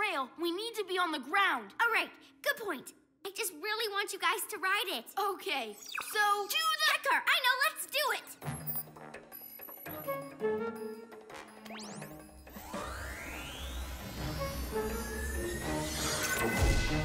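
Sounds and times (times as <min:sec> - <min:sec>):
background music: 0:07.8 - 0:17.0
rising mechanical whoosh: 0:11.9 - 0:17.0.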